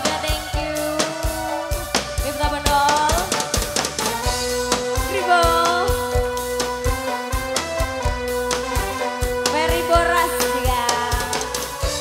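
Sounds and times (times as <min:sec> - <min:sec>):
held keyboard notes: 0:00.0 - 0:12.0
live band playing: 0:00.0 - 0:12.0
steady drum beat: 0:00.0 - 0:12.0.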